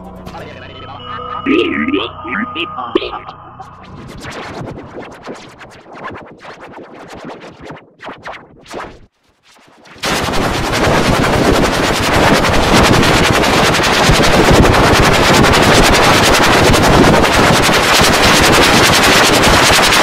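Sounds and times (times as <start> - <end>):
harsh rapid crackling noise: 1.4 - 15.9.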